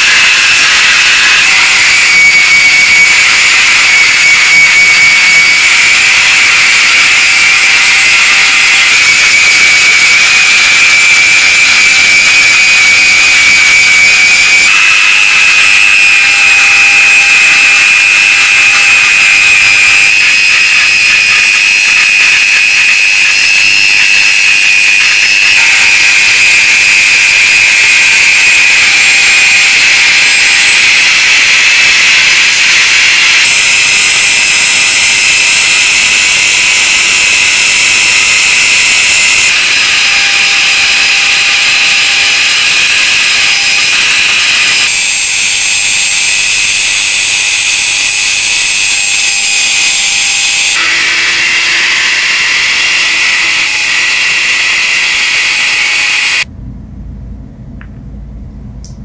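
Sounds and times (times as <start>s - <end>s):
rotary tool grinding metal: 0.0s - 56.5s.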